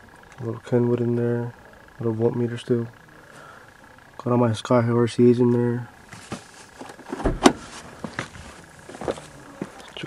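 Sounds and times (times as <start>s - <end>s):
rustling: 6.1s - 9.5s.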